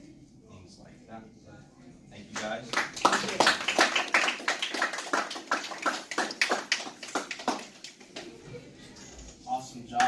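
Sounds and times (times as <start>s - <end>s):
small group applauding: 2.3s - 8.3s.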